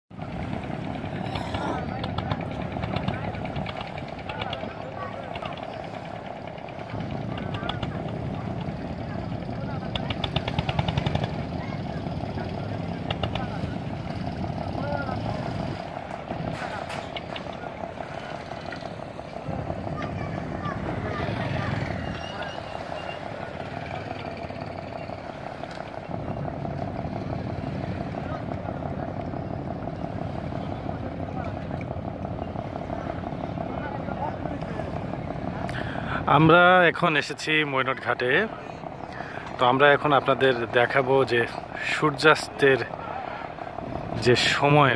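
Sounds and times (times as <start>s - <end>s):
engine running steadily: 0.1s - 44.9s
people talking indistinctly: 0.1s - 44.9s.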